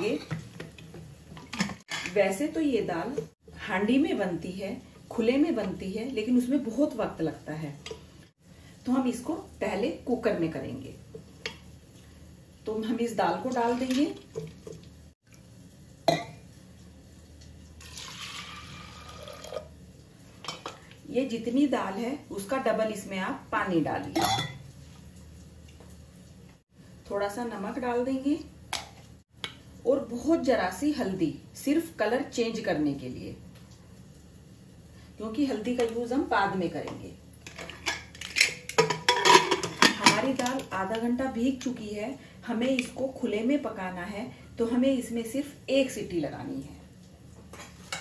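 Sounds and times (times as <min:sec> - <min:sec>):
water pouring into pot: 0:17.6 - 0:19.8.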